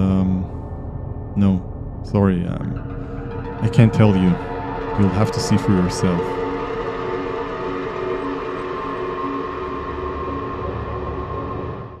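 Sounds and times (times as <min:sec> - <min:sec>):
ambient music sustained tones: 0:00.0 - 0:12.0
low rumble: 0:00.0 - 0:12.0.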